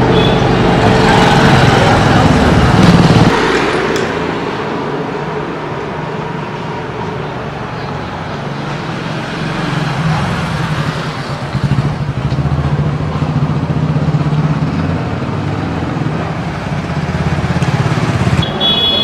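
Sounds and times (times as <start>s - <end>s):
street noise: 0.0s - 19.0s.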